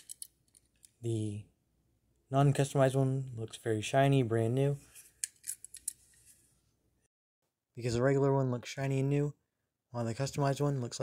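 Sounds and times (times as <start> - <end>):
toy cars clicking and tapping: 0.0 - 1.0.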